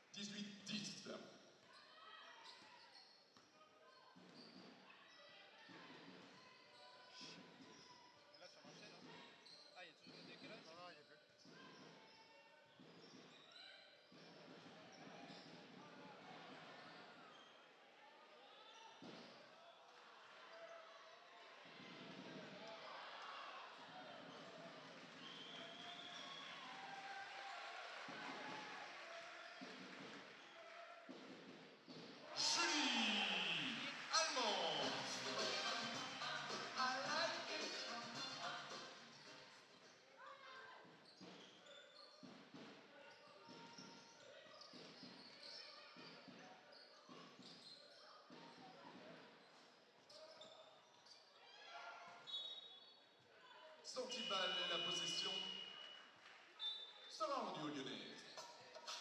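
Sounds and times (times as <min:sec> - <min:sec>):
sneakers squeaking: 0:01.5 - 0:15.9, 0:16.5 - 0:17.7, 0:18.5 - 0:19.5, 0:28.3 - 0:40.0, 0:40.7 - 0:56.0, 0:56.6 - 0:59.0
crowd chatter echoing: 0:32.2 - 0:39.8, 0:53.8 - 0:56.1.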